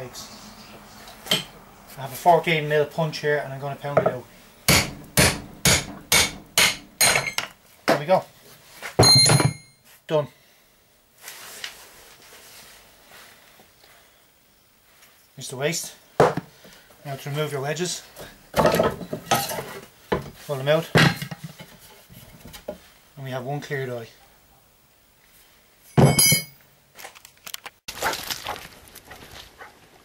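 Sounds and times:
sharp wooden knock: 0:04.0 - 0:07.2
hammer clanging on steel punch: 0:04.0 - 0:07.5, 0:09.0 - 0:09.7, 0:26.0 - 0:26.6.

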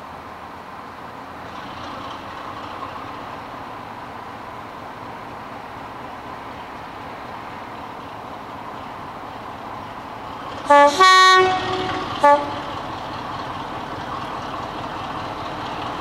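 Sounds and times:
diesel locomotive engine drone: 0:00.0 - 0:16.0.

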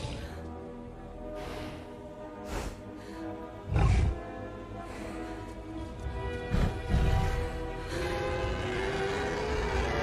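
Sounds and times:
orchestral film music: 0:00.0 - 0:10.0
giant ape growl: 0:06.5 - 0:10.0.

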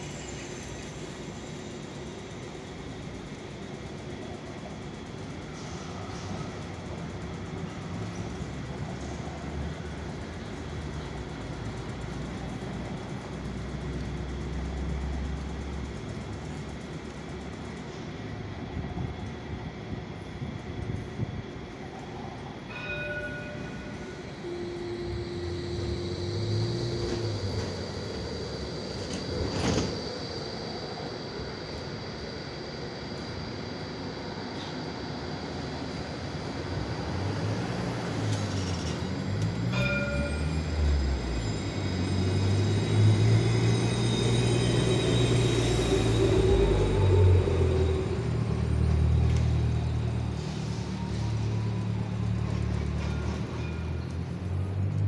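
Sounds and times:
tram motors humming: 0:00.0 - 0:55.0
rising whine: 0:23.8 - 0:53.2.

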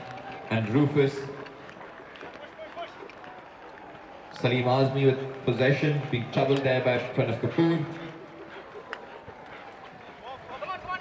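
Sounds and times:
hooves on turf: 0:00.0 - 0:11.0
open field ambience: 0:00.0 - 0:11.0.

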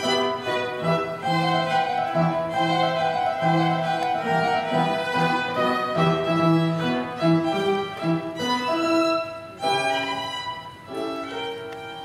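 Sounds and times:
piano chords: 0:00.0 - 0:12.0
violin bowing: 0:00.0 - 0:12.0.

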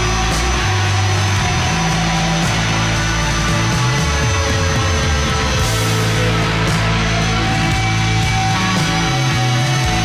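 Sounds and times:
bass notes: 0:00.0 - 0:10.0
distorted electric guitars: 0:00.0 - 0:10.0.

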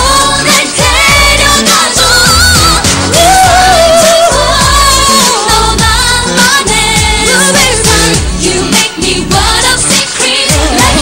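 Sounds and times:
female vocal singing: 0:00.0 - 0:11.0
pop backing track: 0:00.0 - 0:11.0.

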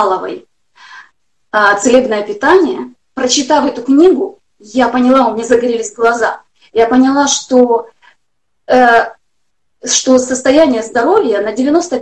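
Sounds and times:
woman speaking: 0:00.0 - 0:00.5, 0:01.5 - 0:09.2, 0:09.8 - 0:12.0.

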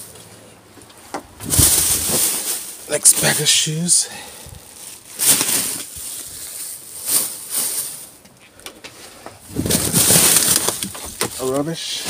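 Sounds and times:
plastic bags rustling: 0:01.3 - 0:12.0.

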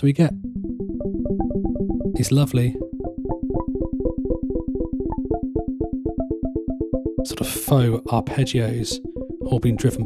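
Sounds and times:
synthesizer pinging arpeggios: 0:00.1 - 0:10.0.

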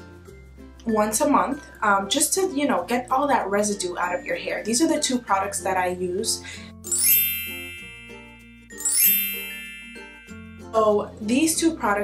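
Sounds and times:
soft background music: 0:00.0 - 0:12.0
bright chime with rising shimmer: 0:06.9 - 0:10.9.

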